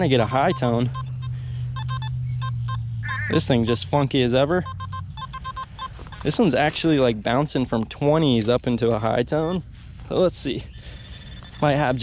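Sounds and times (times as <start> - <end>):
metal detector beeps: 0.0 - 3.9, 4.5 - 6.6, 10.8 - 12.0
low steady hum: 0.0 - 12.0.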